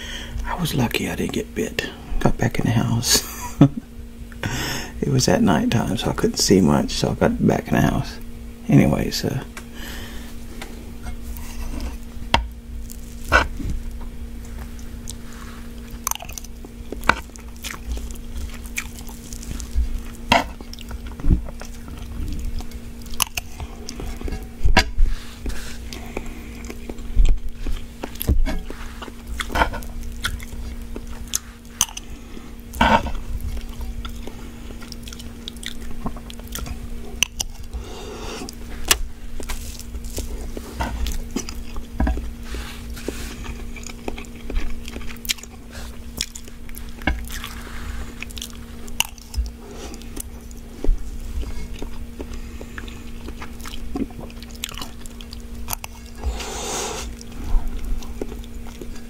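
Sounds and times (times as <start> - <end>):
low hum: 0.0 - 59.0
chewing crunchy noodles: 10.3 - 59.0.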